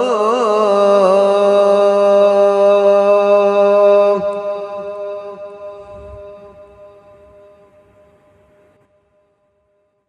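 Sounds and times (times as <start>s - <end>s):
man singing call to prayer: 0.0s - 7.2s
hall reverberation: 2.2s - 9.8s.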